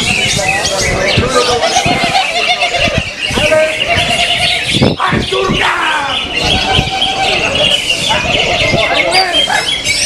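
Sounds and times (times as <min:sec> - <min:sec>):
songbirds chirping: 0:00.0 - 0:10.0
people shouting: 0:05.0 - 0:07.7.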